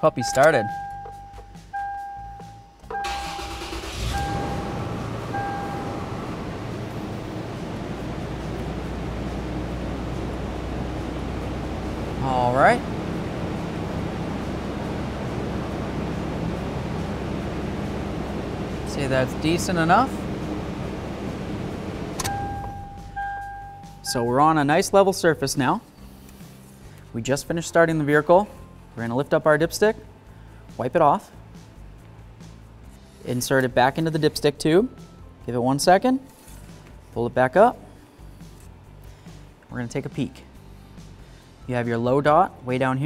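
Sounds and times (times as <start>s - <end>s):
car warning chime beeping: 0.0s - 7.1s, 22.2s - 24.4s
car engine cranking: 2.9s - 23.4s
car engine idling: 3.0s - 24.5s
ignition key click: 22.1s - 23.4s.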